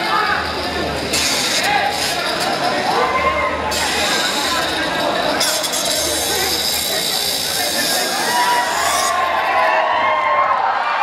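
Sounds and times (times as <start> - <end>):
spectators talking and calling out: 0.0 - 11.0
small electric motors whirring: 0.1 - 9.7.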